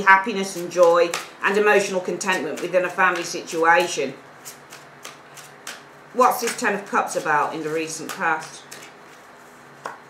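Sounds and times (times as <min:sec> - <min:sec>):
cards being shuffled: 0:00.5 - 0:10.0.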